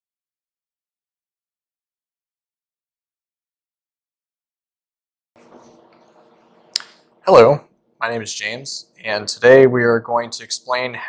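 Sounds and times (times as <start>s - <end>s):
steady low hum: 5.4s - 11.0s
sharp click: 6.7s - 7.0s.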